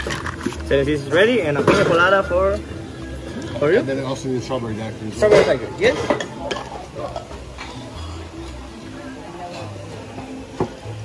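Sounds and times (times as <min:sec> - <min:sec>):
dishes and glassware clinking: 0:01.6 - 0:02.2, 0:05.1 - 0:08.3, 0:09.4 - 0:10.8.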